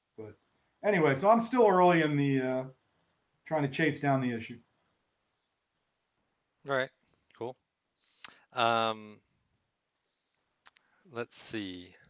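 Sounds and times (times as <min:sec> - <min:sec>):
person saying um: 0:08.6 - 0:09.1.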